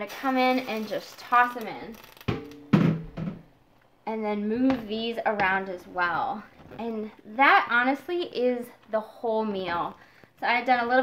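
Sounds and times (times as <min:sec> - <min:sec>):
dishes and utensils knocking: 0:02.3 - 0:03.4.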